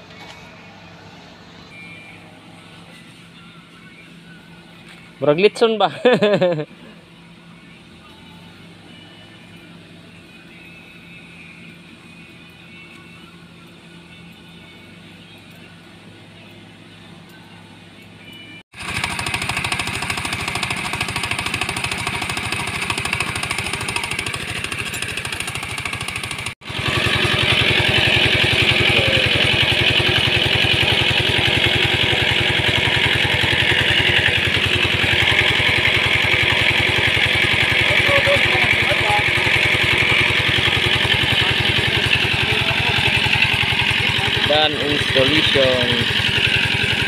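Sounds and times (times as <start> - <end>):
diesel engine running: 17.8 - 47.0.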